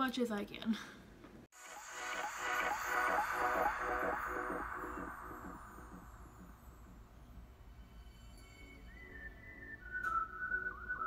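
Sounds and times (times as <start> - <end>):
background music with beat: 1.6 - 11.0
faint whistle-like tone: 2.2 - 11.0.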